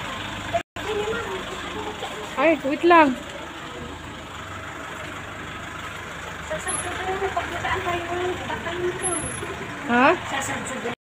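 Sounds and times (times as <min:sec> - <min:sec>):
outdoor traffic noise: 0:00.0 - 0:11.0.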